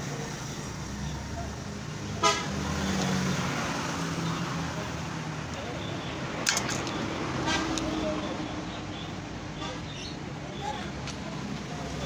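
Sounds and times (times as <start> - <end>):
road traffic hum: 0.0 - 12.0.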